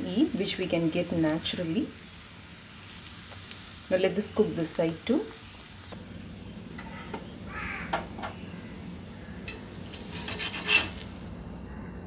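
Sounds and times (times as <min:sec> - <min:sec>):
crepe sizzling on a griddle: 0:00.0 - 0:11.4
metal spatula scraping pan: 0:09.5 - 0:11.0.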